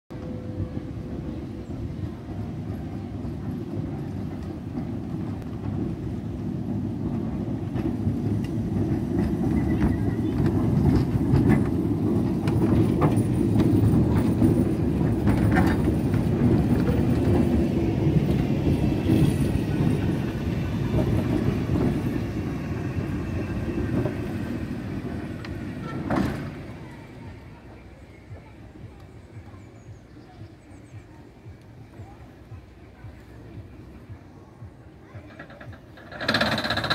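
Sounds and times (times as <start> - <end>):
tram wheels rumbling on rail: 0.1 - 36.9
clicks from tram wheels: 7.0 - 27.2, 35.2 - 36.9.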